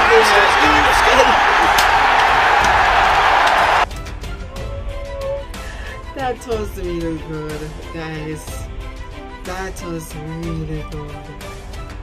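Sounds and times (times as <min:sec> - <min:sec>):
stadium crowd roaring: 0:00.0 - 0:03.9
music with sustained notes: 0:03.8 - 0:12.0.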